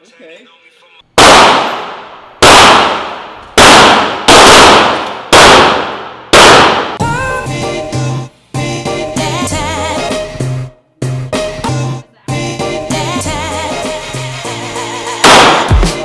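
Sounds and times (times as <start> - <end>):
loud gunshots with ringing tail: 1.2 - 7.0, 15.2 - 16.0
music: 7.0 - 16.0.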